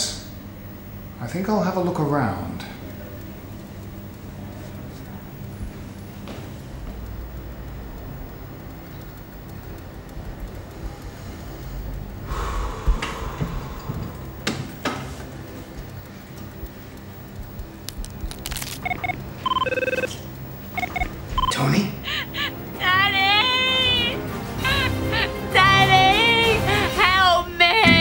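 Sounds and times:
tense underscore music: 5.3 - 28.0
mobile phone beeps: 18.5 - 21.7.

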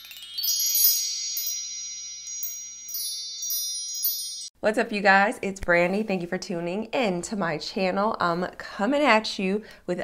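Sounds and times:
bell-like chimes ringing: 0.0 - 4.5
light sparkling strikes: 0.0 - 4.5.

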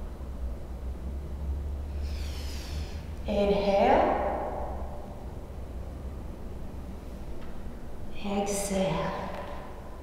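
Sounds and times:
steady low hum: 0.0 - 10.0
woman's voice: 3.3 - 4.3, 8.2 - 9.5.

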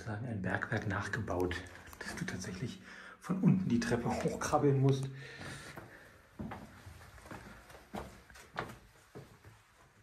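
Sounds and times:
footsteps on wooden stairs: 5.3 - 9.8.

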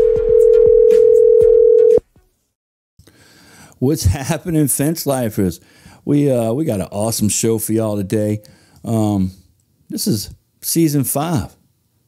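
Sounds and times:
telephone call tone: 0.0 - 2.0.

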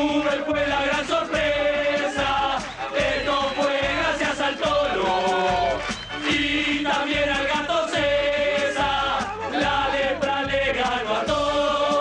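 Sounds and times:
men chanting in unison: 0.0 - 12.0
music with steady beat: 0.0 - 12.0.

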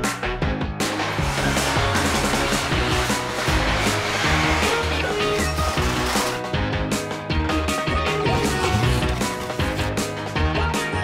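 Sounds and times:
background music: 0.0 - 11.0
motorized garage door running: 0.8 - 6.5.

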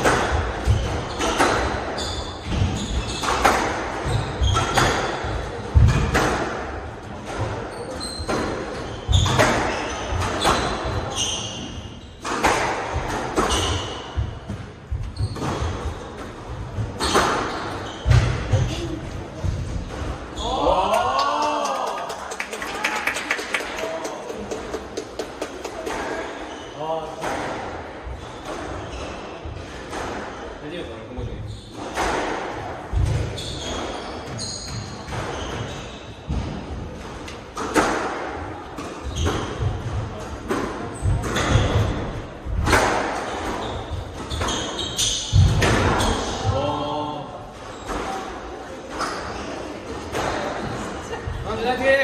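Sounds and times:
squash ball hits: 12.2 - 20.2, 36.3 - 46.6.

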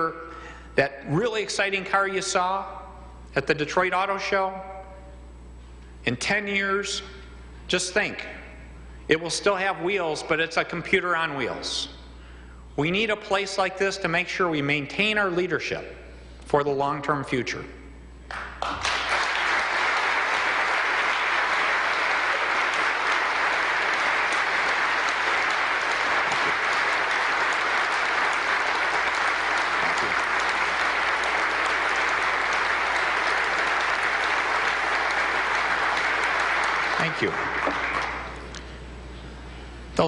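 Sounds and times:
audience applauding: 18.3 - 38.5.

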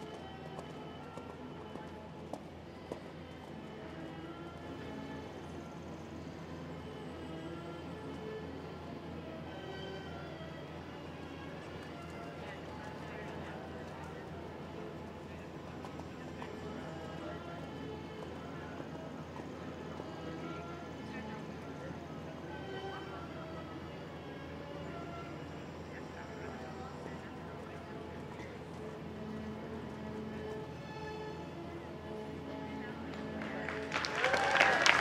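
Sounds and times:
background music: 0.0 - 35.0.

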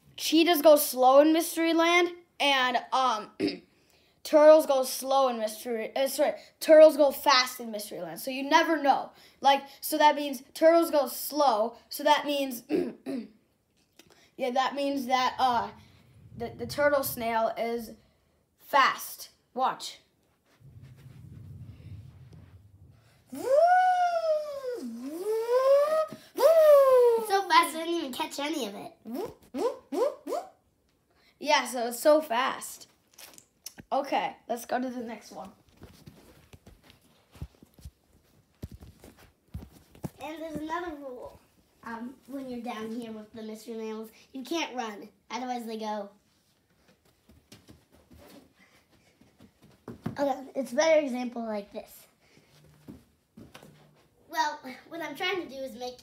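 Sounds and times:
faint low rumble: 15.1 - 18.2, 20.5 - 24.0
child's long wavering voice: 23.3 - 27.3
child's feet running on carpet: 35.6 - 41.3, 46.7 - 50.2, 52.4 - 53.9.

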